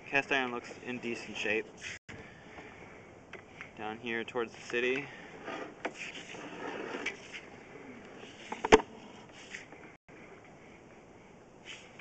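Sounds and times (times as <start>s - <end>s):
cable scraping and handling: 4.5s - 9.9s.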